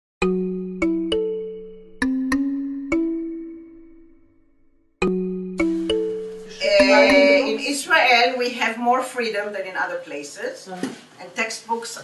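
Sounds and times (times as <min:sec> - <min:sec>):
bell-like chime notes: 0:05.1 - 0:07.6.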